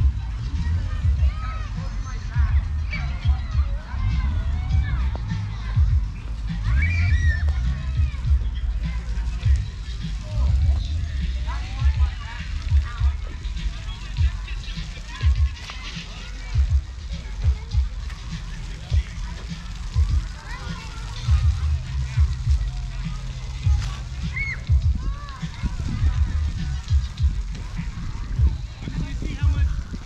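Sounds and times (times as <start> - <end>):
faint distant voices: 0.0 - 30.0
wind rumbling on microphone: 0.0 - 30.0
footsteps on grass: 4.8 - 30.0.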